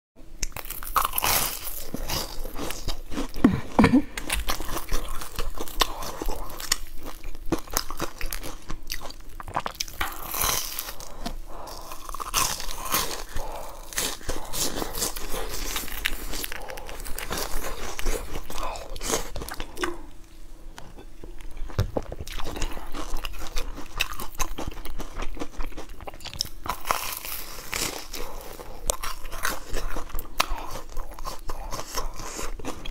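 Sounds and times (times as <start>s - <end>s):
crunching crisp crust: 0.4s - 20.0s, 21.4s - 32.9s.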